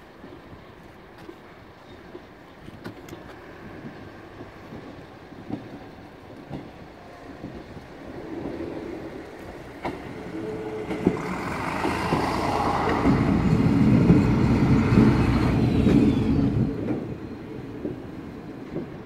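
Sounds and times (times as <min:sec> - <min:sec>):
diesel railcar passing: 0:00.0 - 0:19.0.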